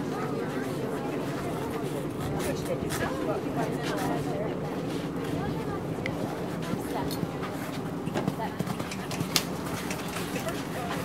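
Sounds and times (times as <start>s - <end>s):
horse hooves cantering on sand: 6.2s - 11.0s.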